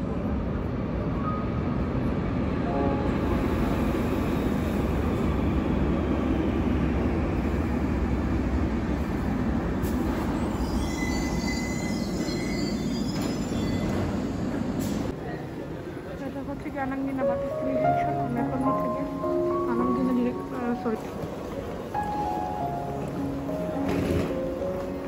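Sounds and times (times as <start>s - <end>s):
train wheels rumbling on rails: 1.7s - 25.0s
high brake squeal: 10.0s - 15.0s.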